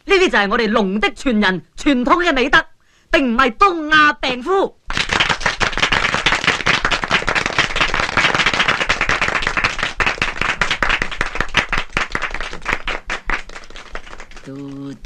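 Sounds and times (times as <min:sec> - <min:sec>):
crowd applauding: 0:04.9 - 0:15.0.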